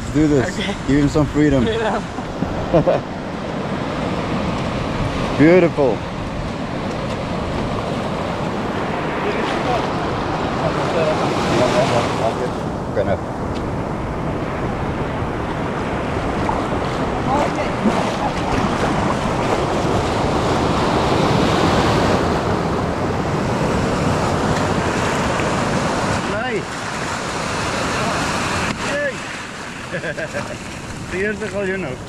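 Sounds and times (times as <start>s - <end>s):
surf washing over sand: 0.0s - 32.0s.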